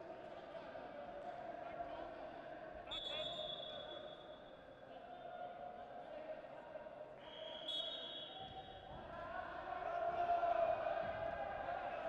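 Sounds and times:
sports hall ambience: 0.0s - 12.0s.

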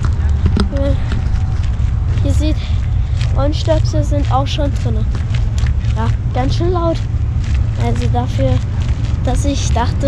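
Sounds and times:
footsteps on gravel: 0.0s - 10.0s
steady low rumble: 0.0s - 10.0s
person's voice: 0.6s - 1.2s, 2.2s - 5.2s, 5.8s - 7.0s, 7.8s - 8.6s, 9.2s - 10.0s.

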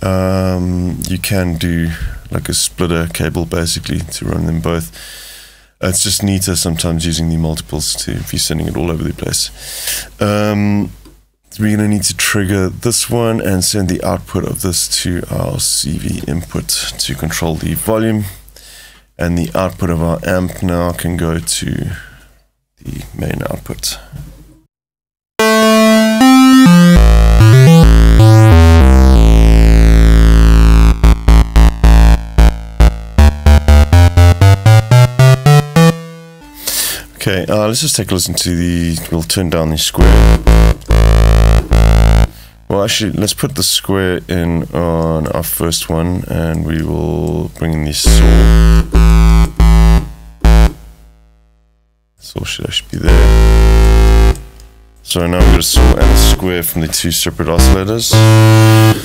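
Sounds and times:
synth held note: 25.4s - 37.2s, 40.0s - 42.6s, 48.1s - 50.8s, 53.1s - 54.5s, 55.4s - 56.4s, 57.6s - 59.0s.

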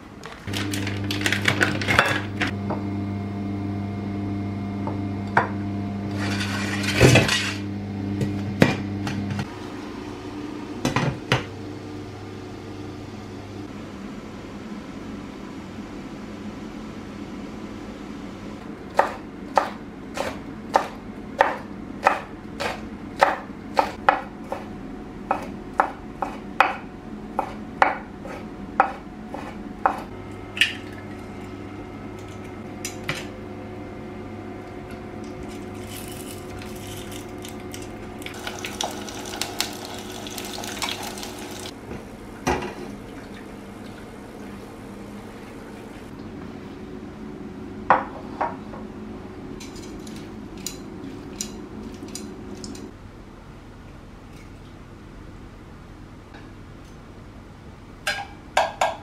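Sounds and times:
steady electric hum: 0.0s - 59.0s.

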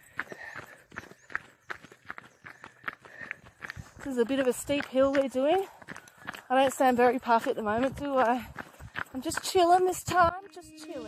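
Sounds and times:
jogging footsteps on dirt: 0.0s - 11.0s.

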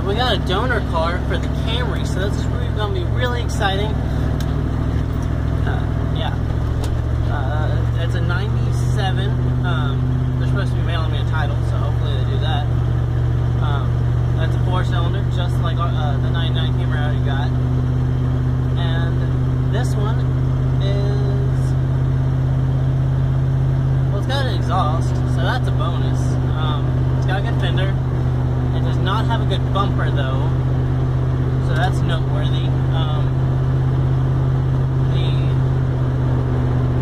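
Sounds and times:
vehicle engine and road drone: 0.0s - 37.0s.

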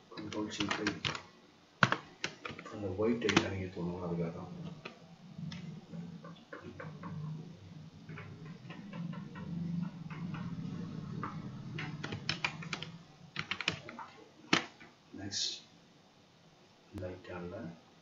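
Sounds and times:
keyboard keystrokes: 0.2s - 1.2s, 1.8s - 3.5s, 8.1s - 14.8s.

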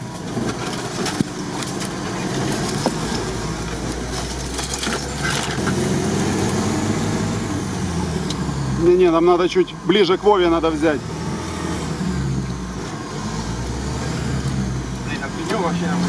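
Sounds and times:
branches scraping vehicle body: 0.0s - 7.3s
vehicle engine running: 0.0s - 16.0s
branches snapping: 0.2s - 6.6s.

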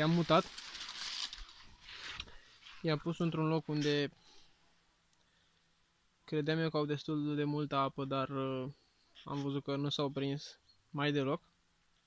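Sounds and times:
man speaking: 0.0s - 0.5s, 2.8s - 4.2s, 6.3s - 11.4s
leaves brushing against phone: 0.0s - 3.0s.

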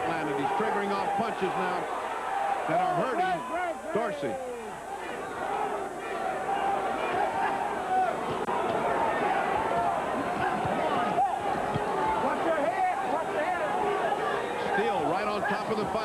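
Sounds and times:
crowd cheering and shouting: 0.0s - 16.0s.

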